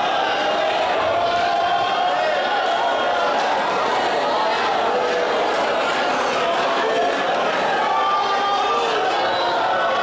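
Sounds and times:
congregation praying loudly: 0.0 - 10.0.

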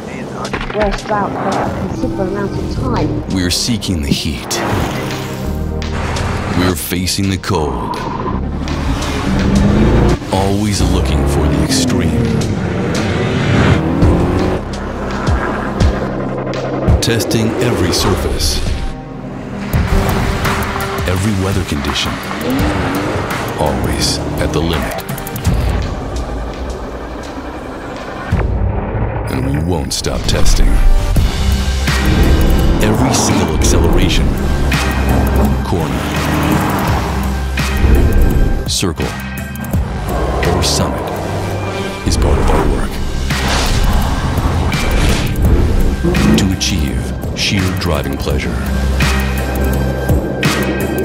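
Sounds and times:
narration: 0.0 - 5.2, 6.5 - 8.3, 9.2 - 12.9, 16.9 - 19.0, 21.0 - 25.2, 29.3 - 36.8, 38.6 - 39.4, 40.1 - 43.5, 46.0 - 49.2
soundtrack music: 0.0 - 51.0
suv engine droning: 7.5 - 38.7, 39.3 - 51.0.

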